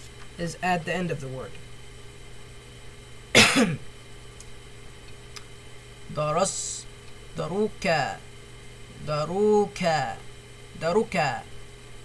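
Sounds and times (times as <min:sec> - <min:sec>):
person coughing: 0:03.3 - 0:03.9.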